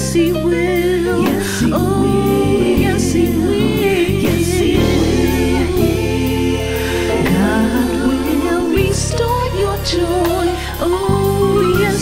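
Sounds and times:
gospel singing voices: 0.0 - 12.0
steady bass line: 0.0 - 12.0.

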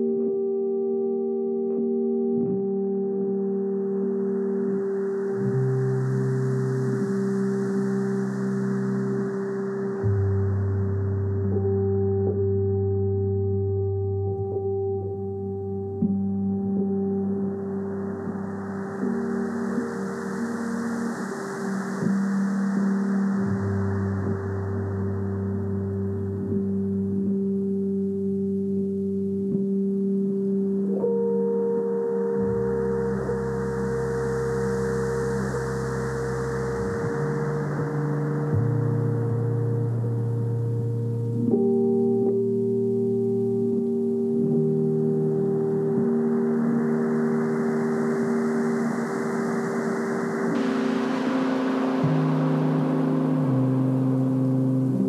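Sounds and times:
slow ambient music: 0.0 - 55.0
surf-like hiss: 18.1 - 25.2, 46.2 - 55.0.

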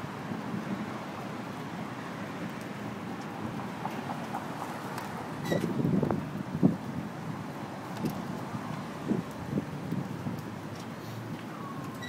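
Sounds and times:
street ambience: 0.0 - 12.0
wind: 0.0 - 12.0.

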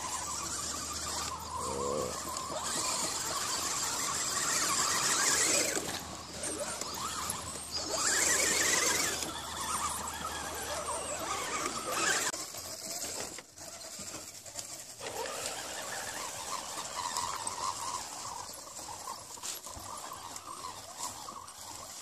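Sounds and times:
electric motors whining: 0.0 - 22.0.

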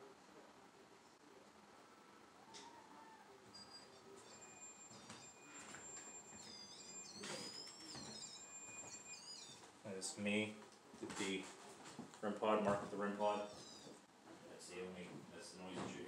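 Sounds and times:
high-pitched electronic alarm tones: 3.5 - 9.7.

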